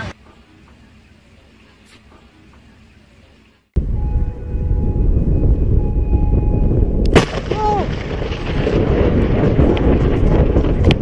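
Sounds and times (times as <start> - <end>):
thunder crack and rumbling: 3.8 - 11.0
person yelling: 7.5 - 7.9.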